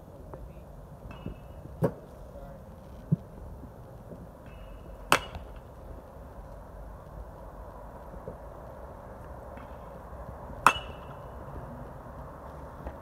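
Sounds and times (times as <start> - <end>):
baseball bat cracking ball: 4.4 - 5.8, 9.5 - 11.6.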